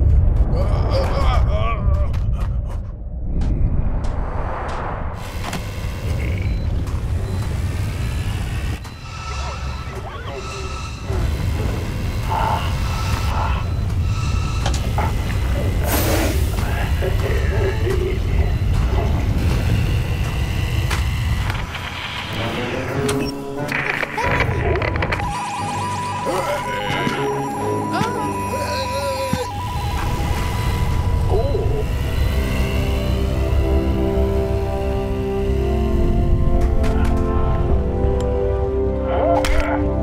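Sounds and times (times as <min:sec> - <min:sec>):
dramatic music: 0:00.0 - 0:40.0.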